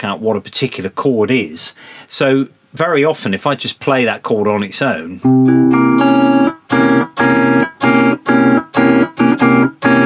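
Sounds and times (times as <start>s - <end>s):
electric guitar strumming a chord: 5.2s - 10.0s.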